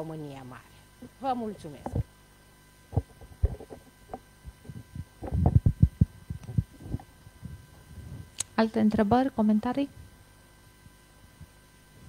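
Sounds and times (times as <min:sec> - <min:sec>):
microphone handling thumps: 0:02.9 - 0:08.4.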